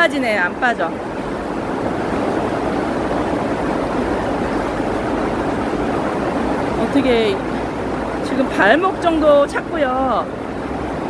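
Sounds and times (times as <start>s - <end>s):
torrential rain: 0.0s - 11.0s.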